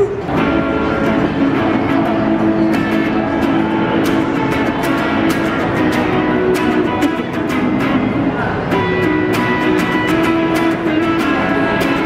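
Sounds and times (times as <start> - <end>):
electric guitar strummed chords: 0.0 - 12.0.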